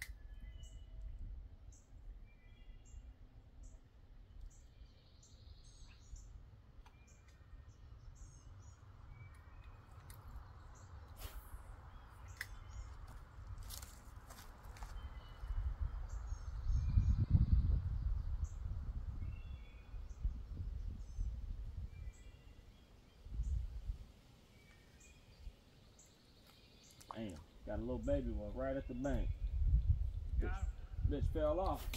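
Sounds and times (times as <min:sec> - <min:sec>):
small birds chirping: 0:00.0 - 0:31.9
low rumble on microphone: 0:15.0 - 0:22.2, 0:27.7 - 0:31.9.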